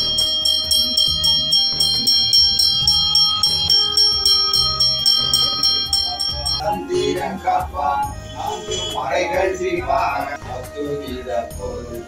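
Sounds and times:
hand bell ringing rapidly: 0.0 - 6.7
devotional music with low beat: 0.0 - 12.0.

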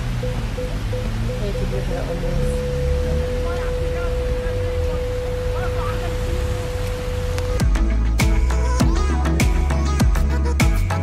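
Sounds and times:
steady tone: 0.0 - 8.8
rain and floodwater rushing: 0.0 - 11.0.

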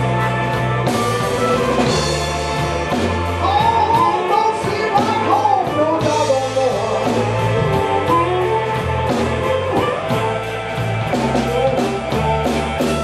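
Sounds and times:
bass line: 0.0 - 13.0
electric guitars: 0.0 - 13.0
steady drum beat: 0.0 - 13.0.

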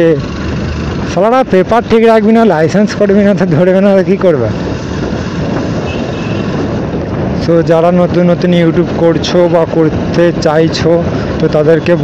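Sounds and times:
motorcycle road noise: 0.0 - 12.0
wind rushing on microphone: 0.0 - 12.0.

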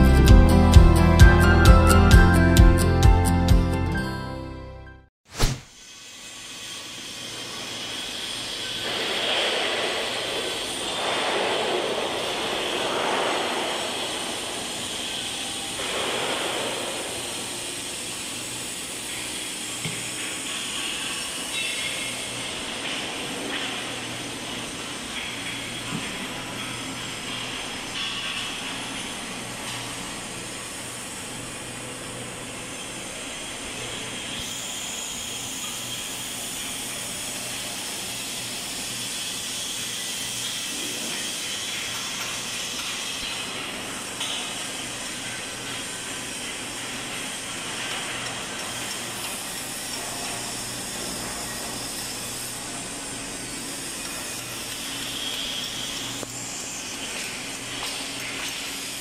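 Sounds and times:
hiss: 5.3 - 32.0, 32.7 - 59.0.

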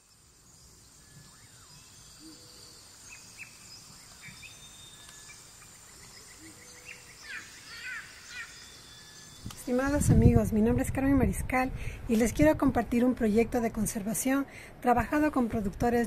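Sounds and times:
high insect drone: 0.0 - 9.8
bird chirps and trills: 0.0 - 10.4.

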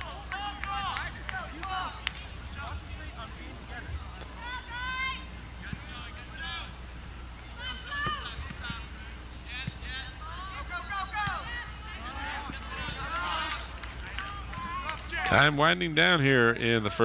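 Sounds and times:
distant shouting voices: 0.0 - 17.0
steady low hum: 0.0 - 17.0.

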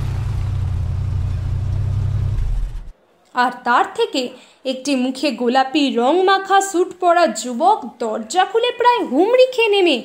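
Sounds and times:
car engine running: 0.0 - 2.9.

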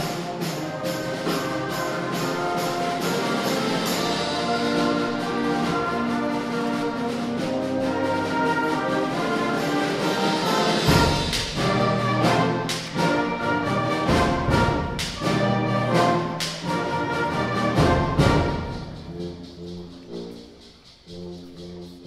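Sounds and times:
concert band playing: 0.0 - 22.0
drums: 0.0 - 22.0.

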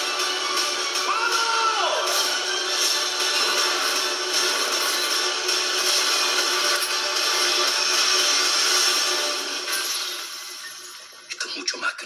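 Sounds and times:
sound effects: 0.0 - 11.3
film trailer music: 0.0 - 12.0.

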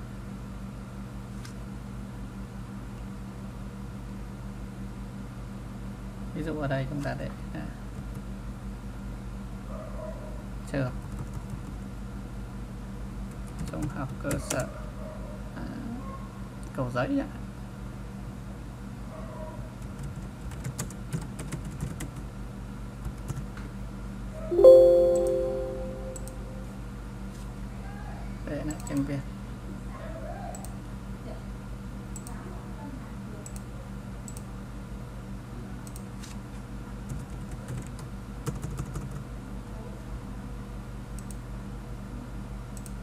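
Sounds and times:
keyboard typing clicks: 24.6 - 26.5
loud chime-like tone: 24.6 - 26.7
low hum: 24.6 - 26.8.

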